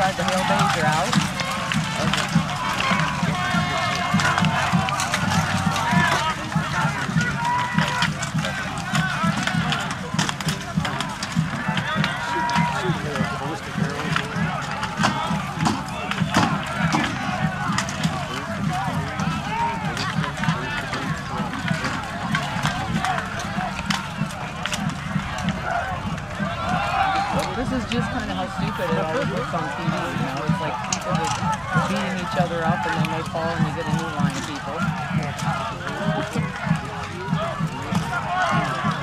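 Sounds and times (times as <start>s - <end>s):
many voices shouting: 0.0s - 39.0s.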